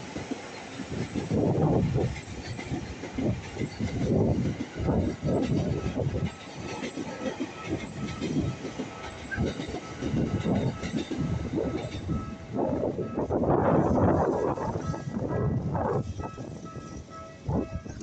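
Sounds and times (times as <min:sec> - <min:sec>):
train wheels clattering over rail joints: 0:00.0 - 0:18.0.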